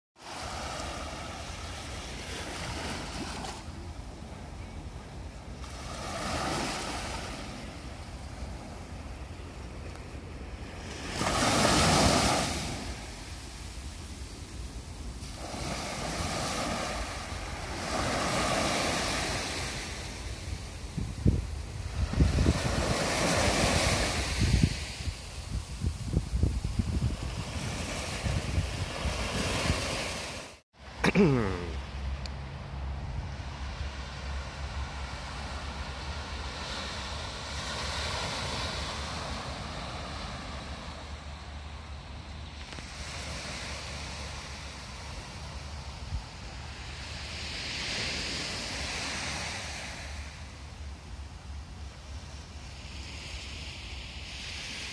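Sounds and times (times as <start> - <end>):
small waves breaking on sand: 0.2 - 31.0, 33.3 - 54.9
wind buffeting microphone: 16.0 - 30.2.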